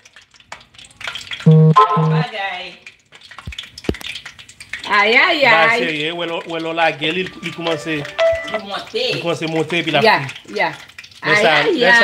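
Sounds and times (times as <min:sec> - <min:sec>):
batter sizzling in hot oil: 0:00.0 - 0:12.0.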